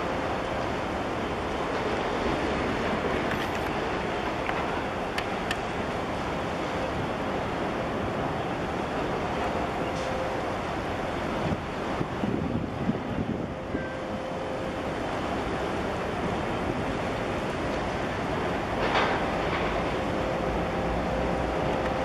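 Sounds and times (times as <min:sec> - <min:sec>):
harbour water washing: 0:00.0 - 0:22.0
wind on microphone: 0:11.3 - 0:14.3.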